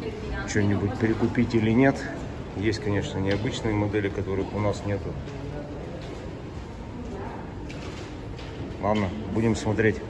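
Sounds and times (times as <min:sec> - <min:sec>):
shop room noise: 0:00.0 - 0:10.0.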